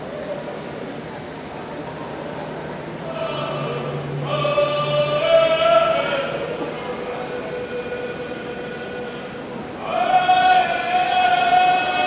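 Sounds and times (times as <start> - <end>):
person singing long held note: 3.0 - 12.0.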